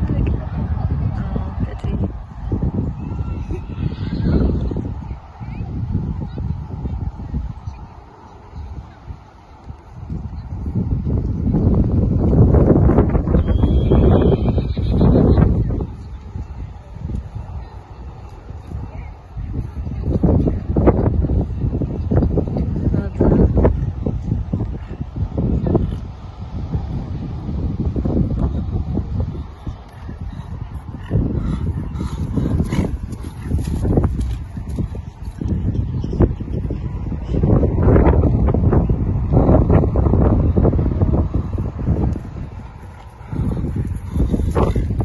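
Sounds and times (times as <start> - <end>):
wind buffeting microphone: 0.0 - 45.0
horse breathing: 29.8 - 34.3, 42.8 - 45.0
horse hoofbeats on grass: 32.0 - 35.5.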